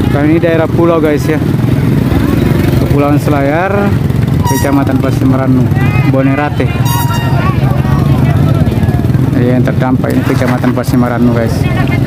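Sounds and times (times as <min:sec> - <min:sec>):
motorcycle engine running: 0:00.0 - 0:12.0
people talking: 0:04.5 - 0:12.0.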